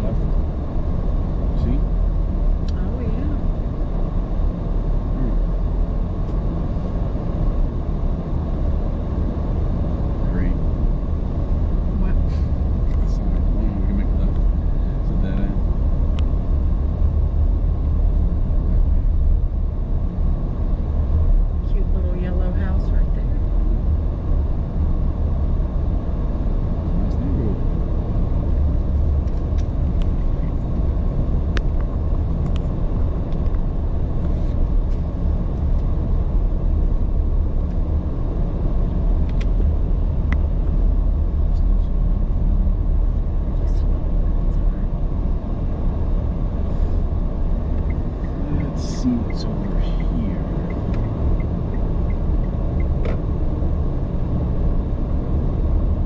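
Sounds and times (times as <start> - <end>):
car engine and tyre rumble: 0.0 - 56.0.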